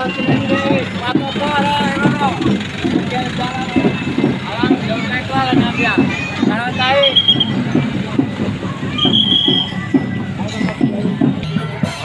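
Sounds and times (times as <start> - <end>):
crowd talking: 0.0 - 12.0
vehicle engines running: 0.0 - 12.0
high steady tone: 6.9 - 7.9.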